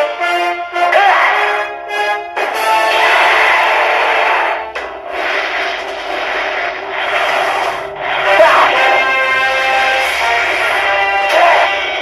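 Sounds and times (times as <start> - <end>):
pachinko machine music and effects: 2.3 - 6.3.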